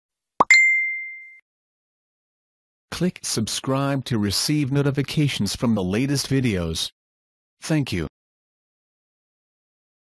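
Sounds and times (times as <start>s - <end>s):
bell-like ding: 0.4s - 1.4s.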